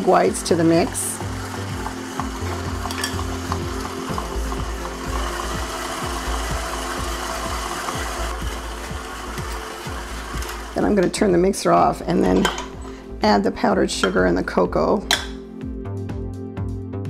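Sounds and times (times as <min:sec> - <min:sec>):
stand mixer churning paste: 0:00.0 - 0:11.4.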